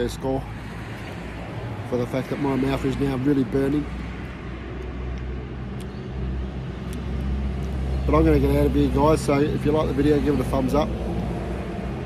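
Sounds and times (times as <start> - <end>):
vehicle engine humming: 0.0 - 12.0.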